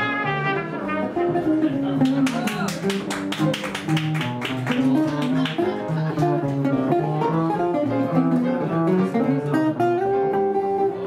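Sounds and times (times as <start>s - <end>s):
guitar strumming chords: 0.0s - 11.0s.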